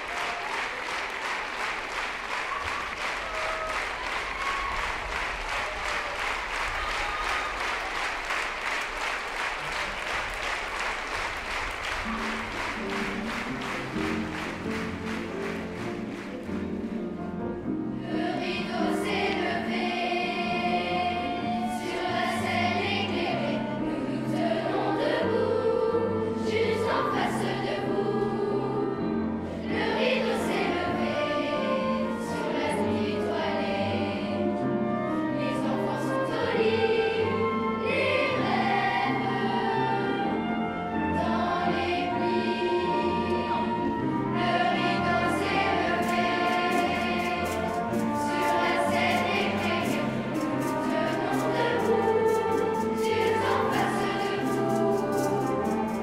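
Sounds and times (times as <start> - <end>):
instrumental accompaniment: 10.0 - 56.0
children's choir singing: 17.9 - 56.0.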